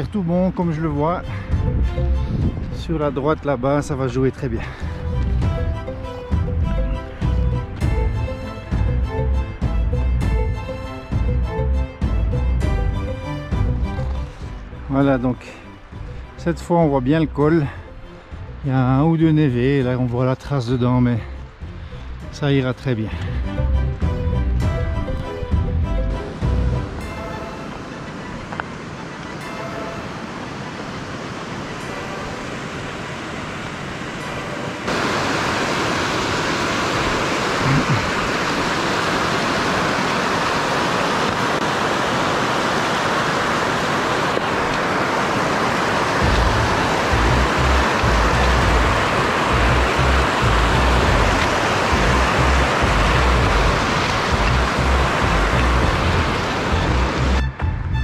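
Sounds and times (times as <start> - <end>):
stream rushing over rocks: 26.4 - 57.4.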